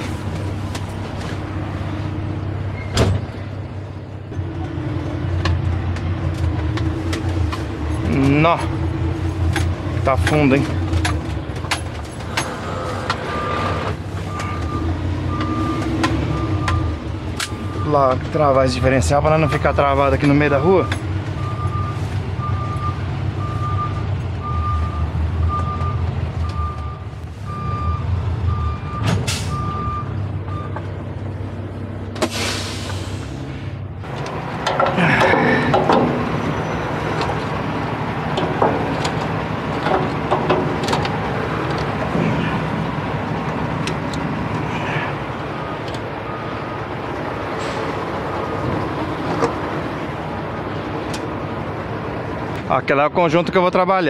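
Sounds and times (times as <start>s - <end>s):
diesel truck idling: 0.0s - 54.0s
reversing alarm beeping: 12.7s - 18.0s, 20.6s - 30.8s
air brakes hissing: 29.1s - 29.8s, 32.2s - 33.8s.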